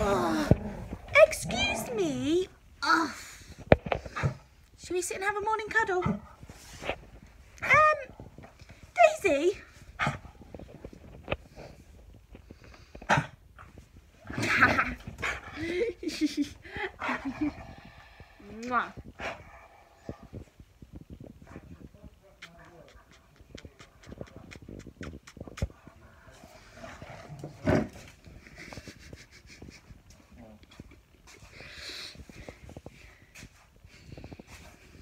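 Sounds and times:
dog snuffling and licking: 21.4s - 26.3s.

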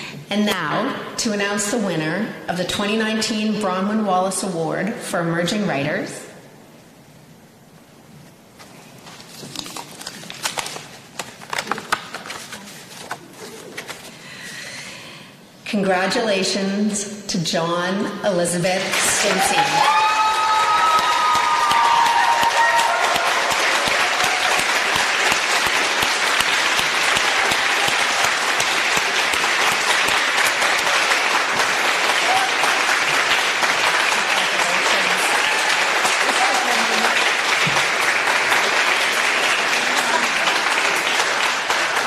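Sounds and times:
audience applauding: 18.8s - 42.0s
long whoops of cheering: 19.3s - 24.7s, 32.2s - 32.8s.

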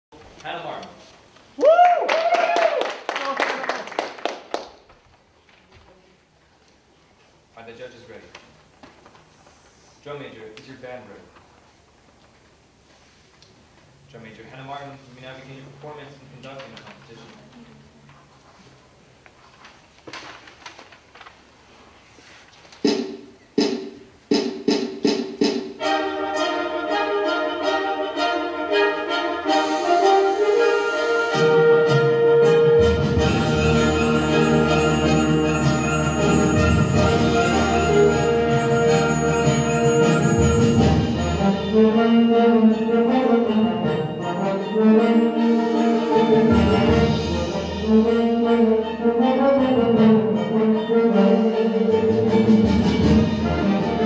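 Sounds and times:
hand claps of applause: 1.6s - 5.0s
wind band with brass: 25.8s - 54.0s.

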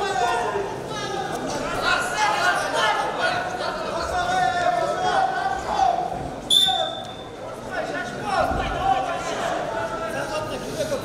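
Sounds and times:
voices in a hall: 0.0s - 11.0s
referee's whistle: 6.5s - 7.3s.

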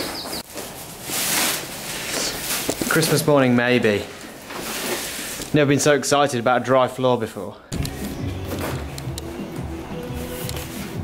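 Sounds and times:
plastic film rustling: 0.4s - 5.6s.

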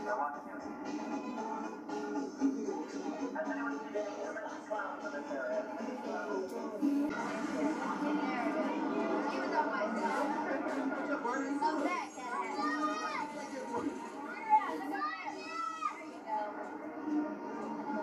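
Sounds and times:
background music: 0.0s - 18.0s
crowd chatter: 0.0s - 18.0s
children's high voices: 11.7s - 13.4s, 14.3s - 16.0s.

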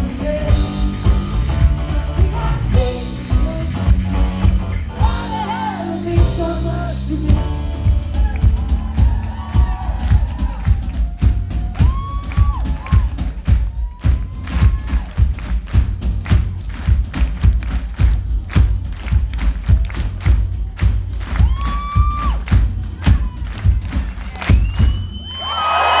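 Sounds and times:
live pop-rock band playing: 0.0s - 24.9s
drum hits: 7.3s - 25.1s
audience cheering and whistling: 8.2s - 15.3s, 21.3s - 26.0s.

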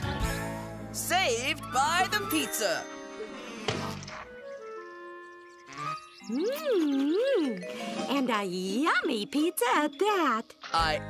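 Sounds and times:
cartoon soundtrack music: 0.0s - 11.0s.

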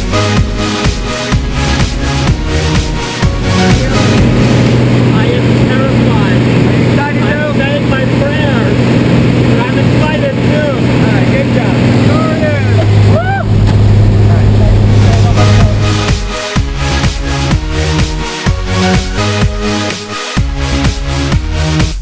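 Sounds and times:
light aircraft engine droning: 3.5s - 16.2s
raised voices: 12.0s - 16.0s.

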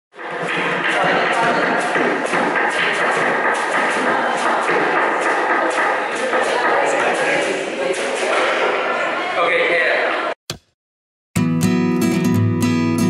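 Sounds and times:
knocks on bucket and washboard: 0.2s - 7.3s.

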